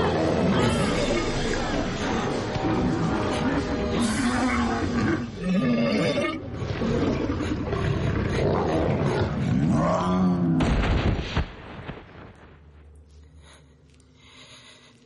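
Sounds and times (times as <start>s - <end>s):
animal-like roar: 0.0s - 10.6s.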